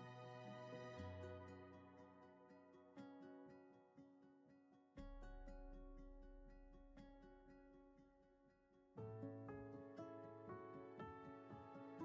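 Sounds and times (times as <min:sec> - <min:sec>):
soft plucked string music: 0:00.0 - 0:08.3, 0:09.0 - 0:12.0.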